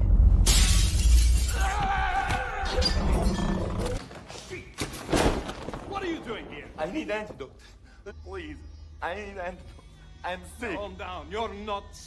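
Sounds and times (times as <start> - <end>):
glass breaking smash: 0.4 - 1.8.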